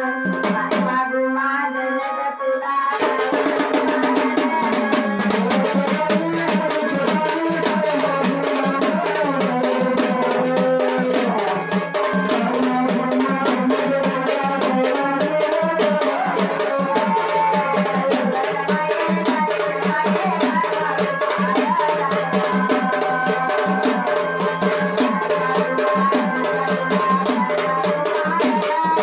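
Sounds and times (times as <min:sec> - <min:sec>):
live folk music: 0:00.0 - 0:29.0
drums beating fast: 0:00.2 - 0:01.1, 0:02.9 - 0:29.0.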